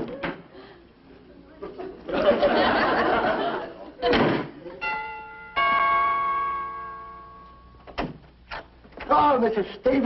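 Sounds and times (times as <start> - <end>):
two-note doorbell chime: 4.8 - 7.8.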